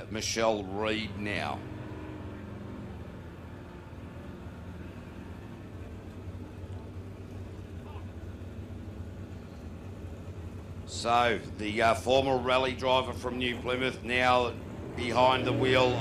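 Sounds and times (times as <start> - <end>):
distant boat engine droning: 0.0 - 16.0.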